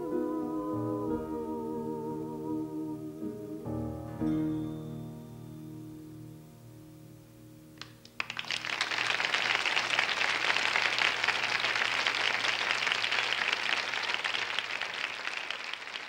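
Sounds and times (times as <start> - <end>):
audience applauding: 7.8 - 16.0.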